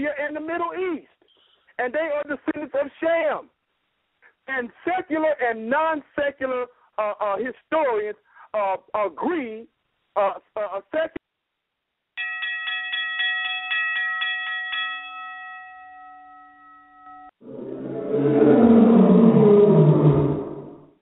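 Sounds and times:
animal-like roar sound effect: 17.4 - 21.0.

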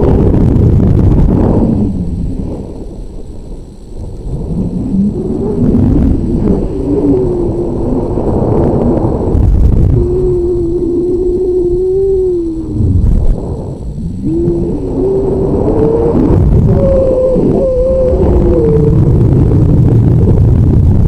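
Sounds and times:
wind buffeting camera: 0.0 - 21.0.

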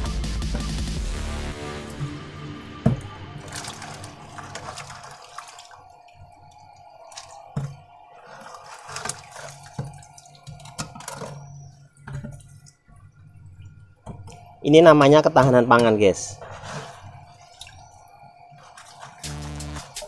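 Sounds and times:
water splashing and dripping: 2.8 - 14.5, 16.4 - 20.0.

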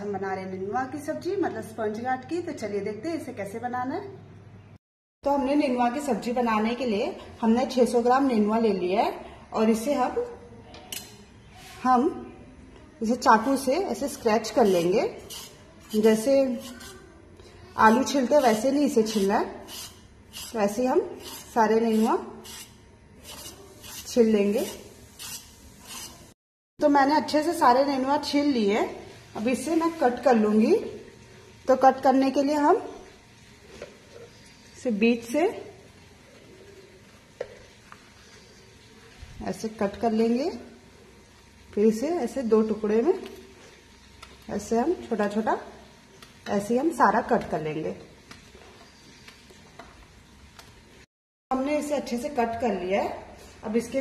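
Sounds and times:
knife scraping gourd skin: 14.6 - 17.0, 17.8 - 26.3.

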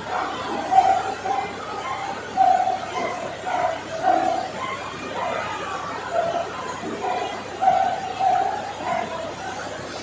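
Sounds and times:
indistinct voices of congregation: 0.0 - 10.0.

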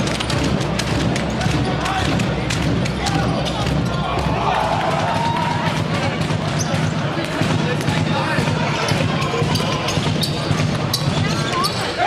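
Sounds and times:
ball bouncing on hall floor: 0.0 - 12.0
crowd voices: 0.0 - 12.0
players shouting: 1.4 - 12.0.

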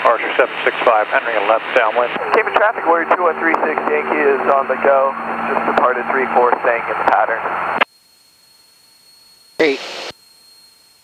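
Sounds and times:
person speaking over radio: 0.0 - 7.6.

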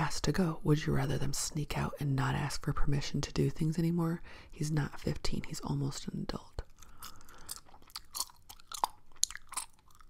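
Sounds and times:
wet mouth smacks chewing gum: 6.7 - 10.0.

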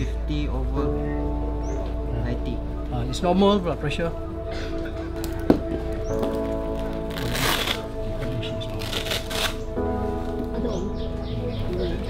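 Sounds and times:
background music: 0.0 - 12.0
velcro ripping: 6.8 - 7.9, 8.6 - 9.7.

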